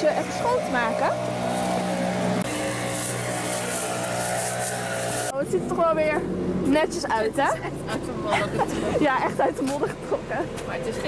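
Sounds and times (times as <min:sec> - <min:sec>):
straw scrubbing horse's leg: 0:00.4 - 0:05.3.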